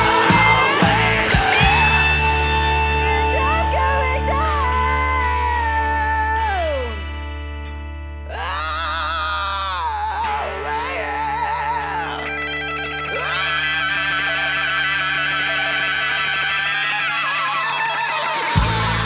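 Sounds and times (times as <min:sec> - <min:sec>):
man singing with vibrato: 0:00.0 - 0:07.0, 0:08.3 - 0:12.4, 0:13.0 - 0:19.0
bass guitar: 0:00.0 - 0:19.0
distorted electric guitar: 0:00.0 - 0:19.0.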